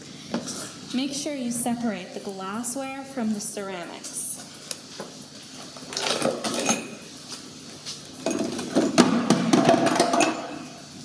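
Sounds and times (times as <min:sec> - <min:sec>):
broken glass clinking into bucket: 0:06.1 - 0:07.0, 0:08.2 - 0:10.6.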